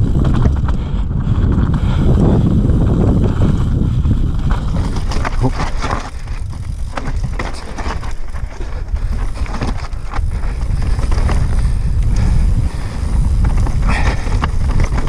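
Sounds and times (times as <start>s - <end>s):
bike rattling: 0.0s - 15.0s
wind buffeting microphone: 0.0s - 15.0s
tyres rolling over stones: 4.4s - 11.8s.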